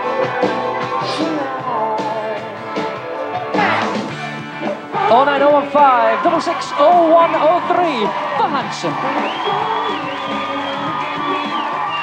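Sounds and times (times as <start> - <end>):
pop music: 0.0 - 12.0
studio audience cheering: 0.0 - 12.0.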